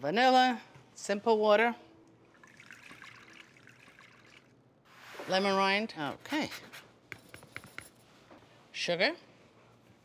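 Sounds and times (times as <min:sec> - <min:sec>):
water trickling into bowl: 0:02.1 - 0:04.6.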